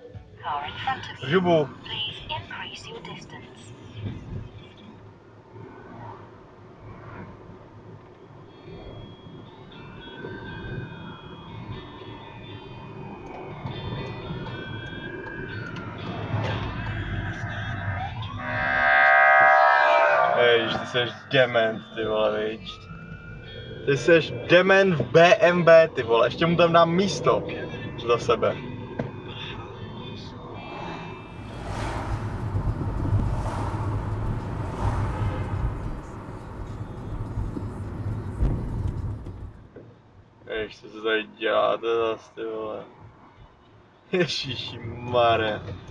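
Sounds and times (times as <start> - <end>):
loud emergency siren: 13.4 - 22.1
tyre and engine rumble: 31.2 - 39.6.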